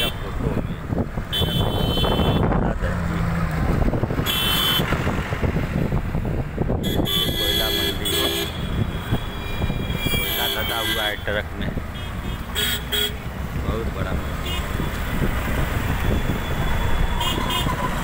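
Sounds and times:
vehicle horns honking: 0.0s - 0.4s, 1.3s - 2.5s, 4.2s - 5.0s, 6.8s - 13.3s, 14.3s - 15.2s, 16.1s - 18.0s
busy road traffic: 0.0s - 18.0s.

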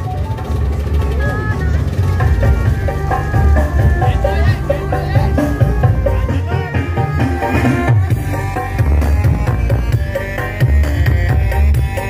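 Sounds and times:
person speaking over music: 1.2s - 7.3s
loud music with heavy bass: 1.3s - 12.0s.

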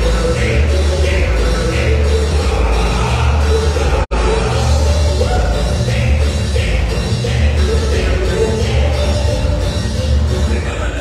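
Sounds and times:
loud dance music with heavy bass: 0.0s - 11.0s.

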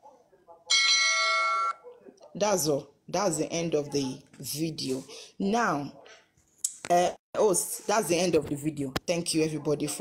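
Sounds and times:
electronic bell-like chime: 0.7s - 1.8s.

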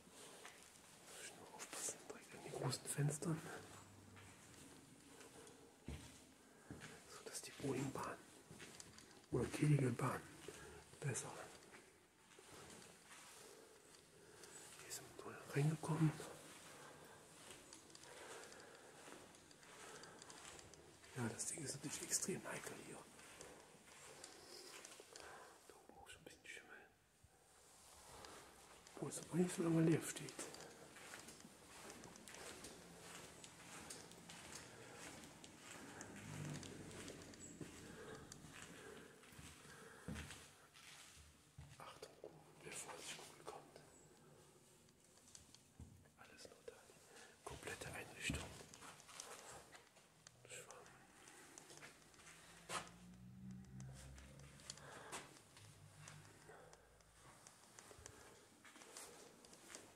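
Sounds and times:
small ticks and rustles: 0.0s - 59.9s
faint whispered voice: 0.2s - 44.7s, 46.1s - 59.9s
soft ticks: 47.8s - 59.9s.

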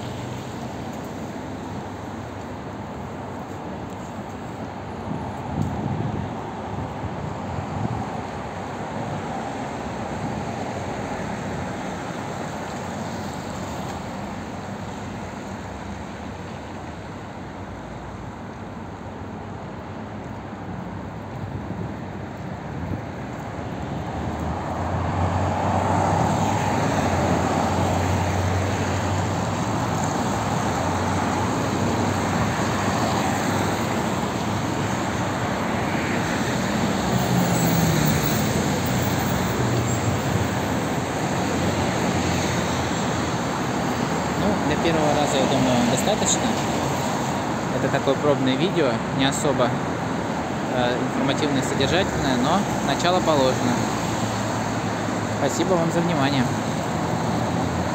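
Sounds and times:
passing cars: 0.0s - 57.9s.

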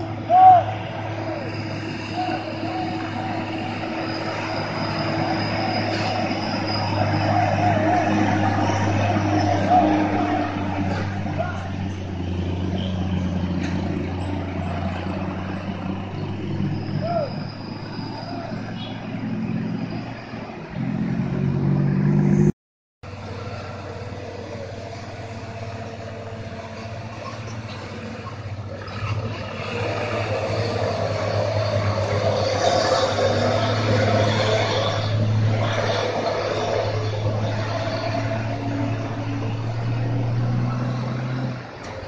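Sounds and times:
another heavy engine: 0.0s - 42.0s
cars and motorcycles passing: 0.0s - 42.0s
truck diesel engine under load: 0.0s - 42.0s.

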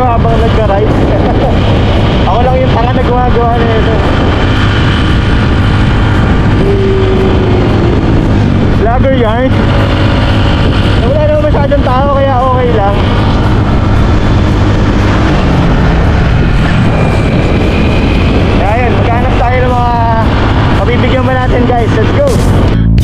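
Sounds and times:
motorcycle engine running: 0.0s - 23.0s
wind noise: 0.0s - 23.0s
man's voice: 11.0s - 13.2s, 18.6s - 22.4s.

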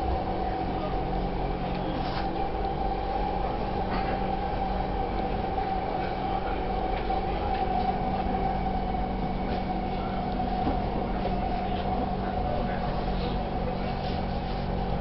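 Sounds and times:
train whine: 0.0s - 15.0s
wheels rumbling on track: 0.0s - 15.0s.

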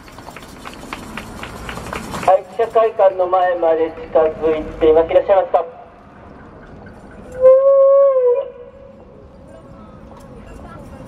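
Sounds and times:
loudspeaker feedback howl: 7.4s - 9.0s.

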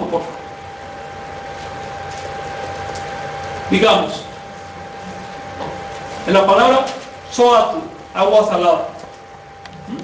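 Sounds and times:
high whine: 0.0s - 10.0s.

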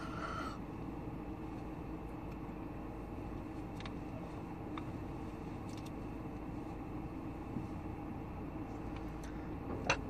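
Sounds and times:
car cabin hum and rumble: 0.0s - 10.0s.

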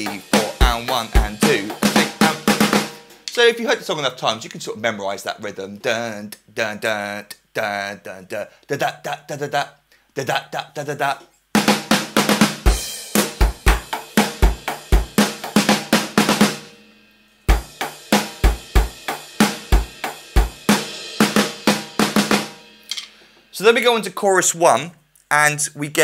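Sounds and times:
electronic drum rock beat: 0.0s - 3.5s, 11.6s - 16.7s, 17.5s - 23.8s.

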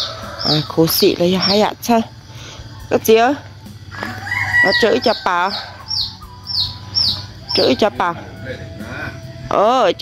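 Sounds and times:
rooster crowing: 0.0s - 1.0s, 3.9s - 8.8s.

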